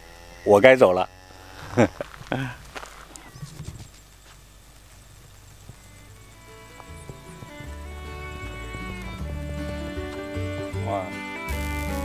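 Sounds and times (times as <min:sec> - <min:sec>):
background music with bass notes: 0:06.4 - 0:12.0.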